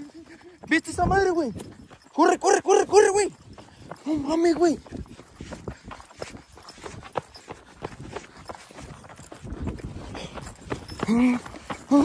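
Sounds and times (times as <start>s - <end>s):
footsteps running on dirt path: 0.0s - 12.0s.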